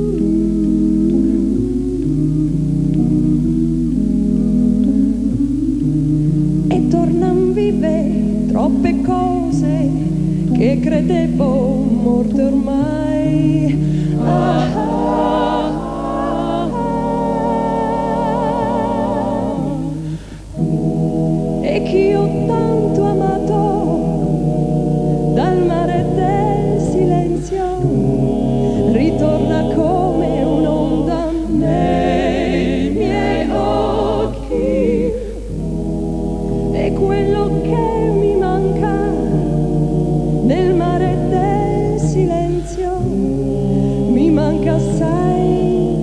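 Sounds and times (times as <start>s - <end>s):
soft sustained low accompaniment: 0.0s - 46.0s
vocal group singing harmony: 0.0s - 46.0s.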